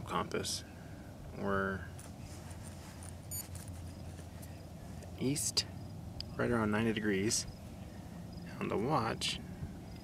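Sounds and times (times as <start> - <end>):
faint handling rustles: 1.8 - 5.4.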